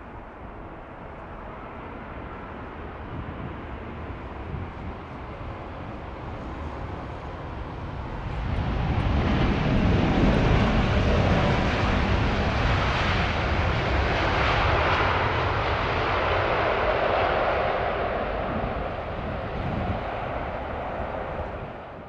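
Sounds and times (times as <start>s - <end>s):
jet engines rumble and whine: 0.0s - 22.0s.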